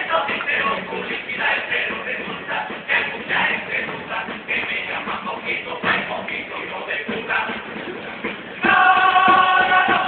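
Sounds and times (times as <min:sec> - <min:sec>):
indistinct voices: 0:00.0 - 0:10.0
scraps of music: 0:00.0 - 0:10.0.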